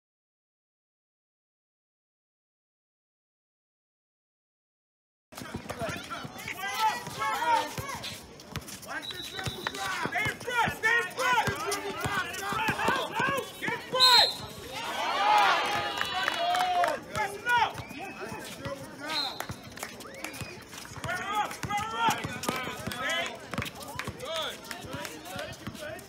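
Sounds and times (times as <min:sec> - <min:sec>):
basketball bouncing on court: 0:05.4 - 0:14.7, 0:20.3 - 0:25.9
people shouting: 0:09.8 - 0:18.3.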